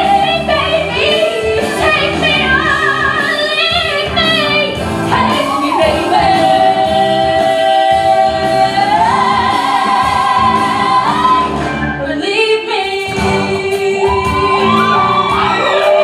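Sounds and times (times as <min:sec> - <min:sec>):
band accompaniment: 0:00.0 - 0:16.0
women singing a duet: 0:00.0 - 0:16.0.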